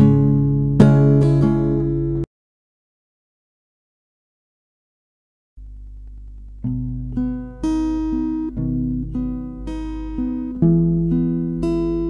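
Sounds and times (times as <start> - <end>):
acoustic guitar strumming chord: 0.0 - 2.3, 6.6 - 12.0.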